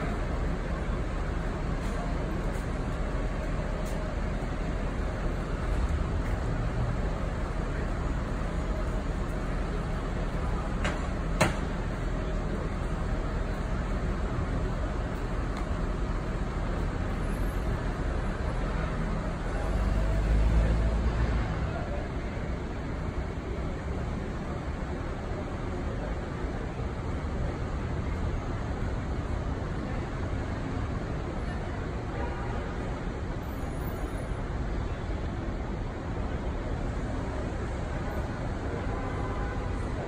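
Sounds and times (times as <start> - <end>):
rumble of passing vehicles: 0.0 - 40.0.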